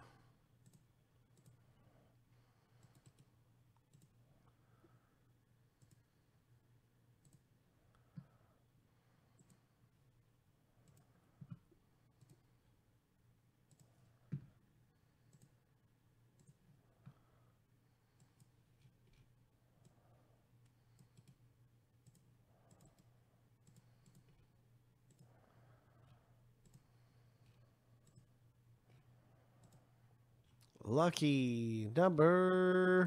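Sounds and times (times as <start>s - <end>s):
faint computer mouse clicks: 0.6s - 1.6s, 2.8s - 4.2s, 5.8s - 6.0s, 7.2s - 8.0s, 9.3s - 9.6s, 10.8s - 11.6s, 12.2s - 12.4s, 13.7s - 14.5s, 15.3s - 15.6s, 16.3s - 17.2s, 18.1s - 20.0s, 20.6s - 21.4s, 22.0s - 25.3s, 26.6s - 28.3s, 28.9s - 29.9s.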